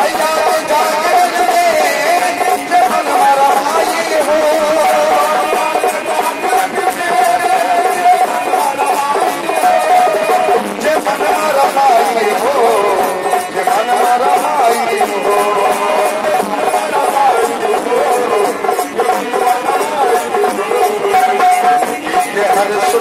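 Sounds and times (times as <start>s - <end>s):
dholak drum: 0.0s - 23.0s
jingling hand percussion: 0.0s - 23.0s.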